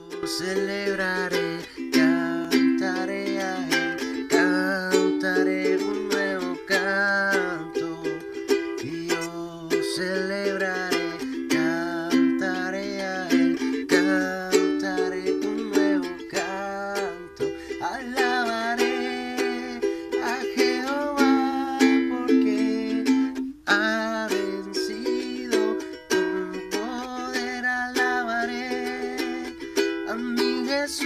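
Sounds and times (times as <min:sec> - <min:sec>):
ukulele strummed: 0:00.0 - 0:31.0.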